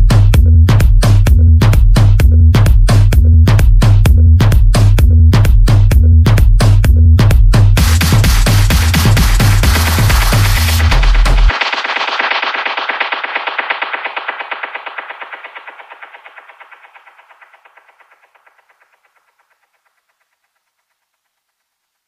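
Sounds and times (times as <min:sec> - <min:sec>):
electronic dance music: 0:00.0 - 0:21.2.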